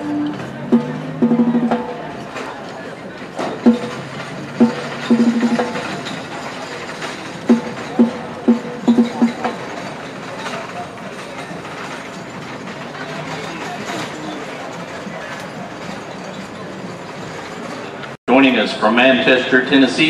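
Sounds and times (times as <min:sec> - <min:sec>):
pitched percussion strikes: 0:00.0 - 0:14.0
murmur of outdoor crowd: 0:00.0 - 0:20.0.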